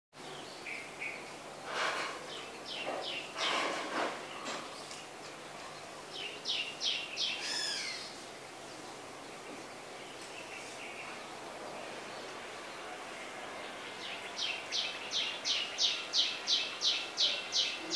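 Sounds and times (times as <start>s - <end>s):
birds calling: 0.2s - 17.9s
steady background noise: 0.2s - 17.9s.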